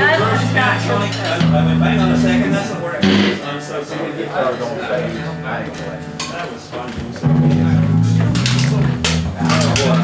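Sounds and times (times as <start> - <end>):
people talking: 0.0 - 10.0
band instrument holding low notes: 1.4 - 3.6.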